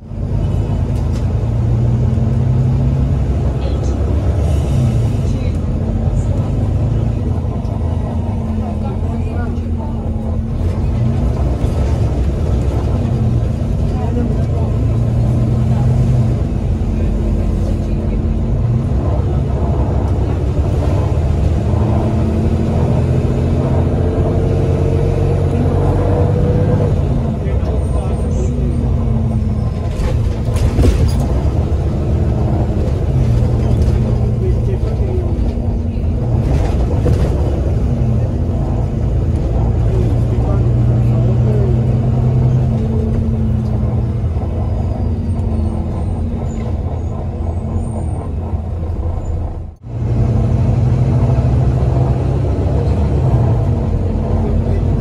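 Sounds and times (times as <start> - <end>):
bus diesel engine droning: 0.0 - 55.0.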